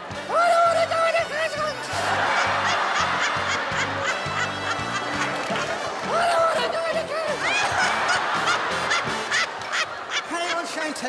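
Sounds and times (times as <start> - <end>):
background music: 0.0 - 11.0
studio audience laughing: 1.8 - 11.0.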